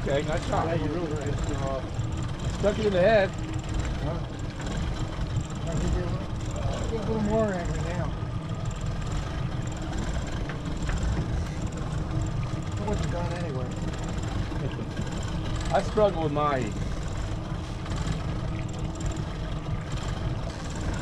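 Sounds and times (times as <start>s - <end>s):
outboard engines rumbling: 0.0s - 21.0s.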